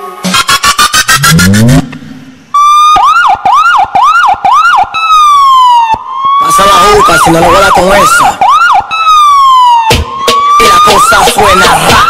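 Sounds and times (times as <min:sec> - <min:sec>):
police siren sound effect: 0:00.0 - 0:12.0
dance music over loudspeakers: 0:10.2 - 0:12.0.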